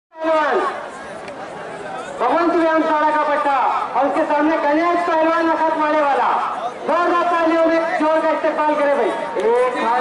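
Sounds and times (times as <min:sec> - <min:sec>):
crowd chattering: 0:00.2 - 0:10.0.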